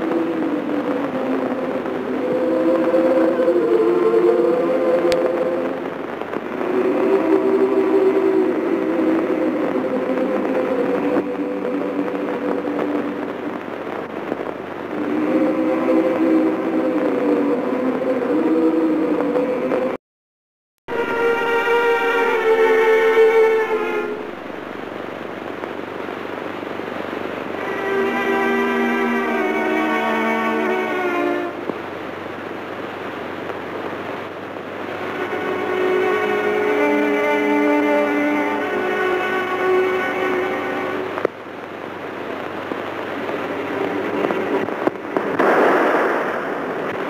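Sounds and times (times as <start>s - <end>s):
orchestral sustained chords: 0.0s - 13.6s, 14.8s - 19.7s, 20.9s - 25.2s, 27.4s - 31.7s, 34.8s - 41.3s
record crackle: 0.0s - 20.0s, 20.9s - 47.0s
steady rumble of noise: 0.0s - 20.0s, 20.9s - 47.0s
orchestral held chord: 20.9s - 24.8s, 27.6s - 31.7s, 35.0s - 41.2s.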